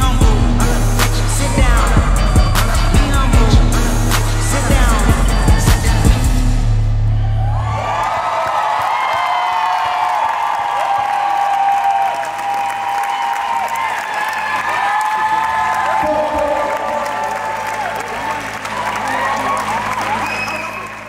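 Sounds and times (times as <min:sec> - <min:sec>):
audience applauding and cheering: 0:07.0 - 0:21.0
high-pitched screams and whoops: 0:07.1 - 0:21.0.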